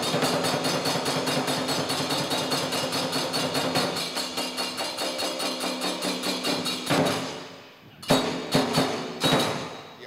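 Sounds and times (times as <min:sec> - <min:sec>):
drum: 0:00.0 - 0:07.4, 0:08.0 - 0:09.8
small hand cymbals struck: 0:00.0 - 0:10.0.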